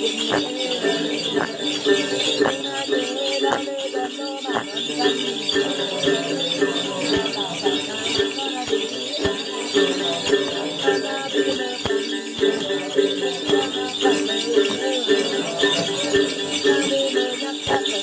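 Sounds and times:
jingle bells shaking: 0.0s - 18.0s
woman singing: 0.0s - 18.0s.

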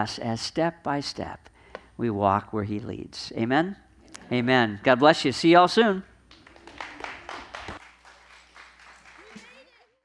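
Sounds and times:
scattered clapping: 6.3s - 9.9s.

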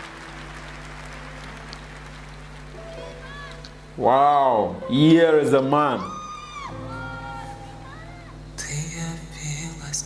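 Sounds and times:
crowd noise hiss: 0.0s - 10.0s
low sustained chord: 0.0s - 10.0s.

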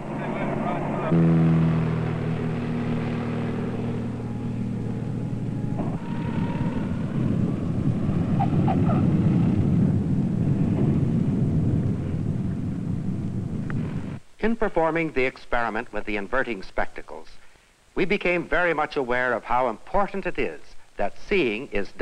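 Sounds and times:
propeller plane engine drone: 0.0s - 14.2s.

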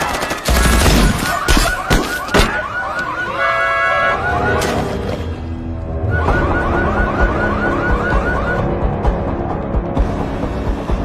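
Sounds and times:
electronic siren warbling: 1.1s - 5.0s, 5.9s - 8.8s.

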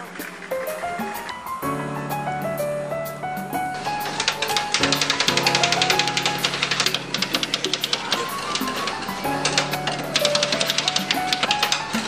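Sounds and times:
background music sustained notes: 0.0s - 12.0s.

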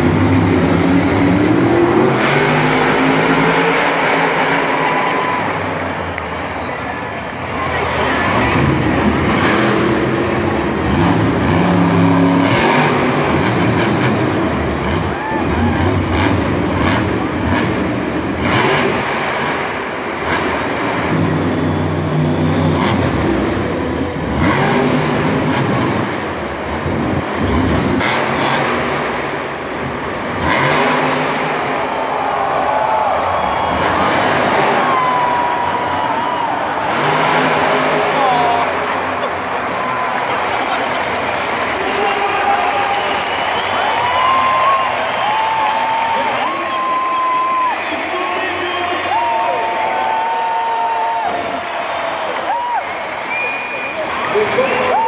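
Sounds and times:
truck engine revving: 0.0s - 50.0s
echoing stadium ambience: 0.0s - 55.0s.

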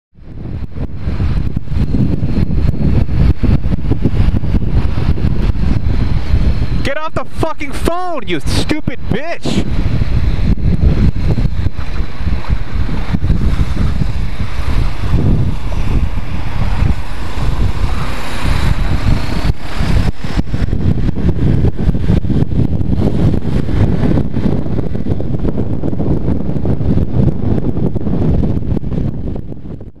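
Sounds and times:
road and traffic noise: 0.2s - 29.8s
wind rushing over microphone: 0.2s - 30.0s.

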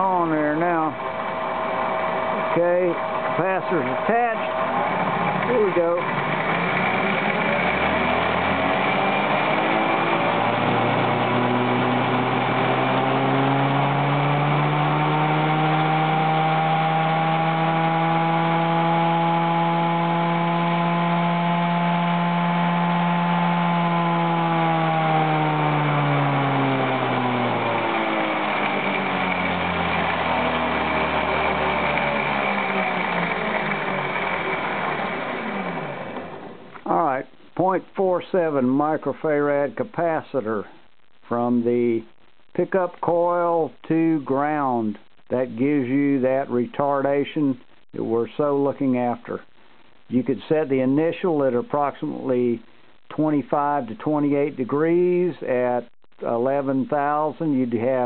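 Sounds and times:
scooter flywheel spinning on rig: 0.0s - 36.6s.

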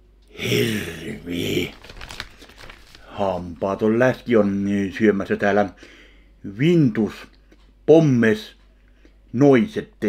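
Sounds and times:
person speaking: 0.3s - 8.6s
plastic bag crinkling: 1.2s - 4.0s.

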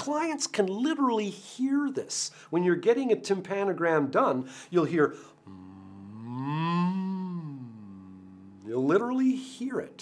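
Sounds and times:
man humming a rising tone: 5.4s - 8.8s.

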